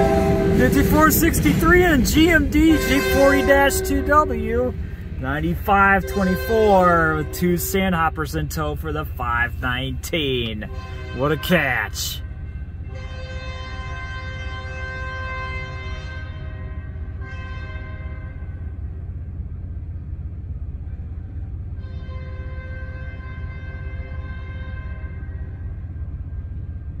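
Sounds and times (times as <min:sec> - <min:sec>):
locomotive air horn chord: 0:00.0 - 0:19.0, 0:21.7 - 0:26.6
low train rumble: 0:00.0 - 0:27.0.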